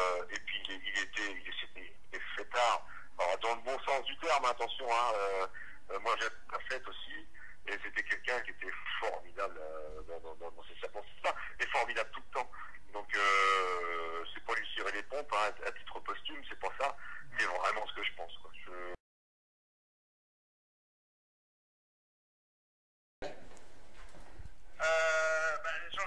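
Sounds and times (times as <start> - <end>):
person talking over telephone: 0.0 - 19.0, 24.8 - 26.0.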